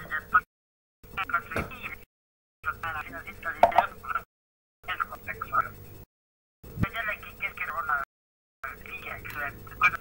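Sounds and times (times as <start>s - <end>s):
person talking over voice line: 2.8s - 4.0s.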